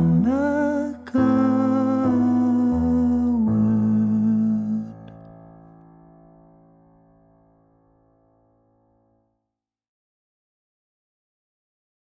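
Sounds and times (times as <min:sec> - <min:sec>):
man singing layered harmony: 0:00.0 - 0:05.1.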